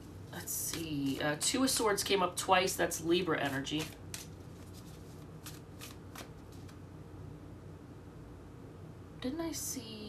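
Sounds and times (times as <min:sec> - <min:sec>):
tarot cards being shuffled: 0:00.4 - 0:01.9, 0:03.2 - 0:06.8.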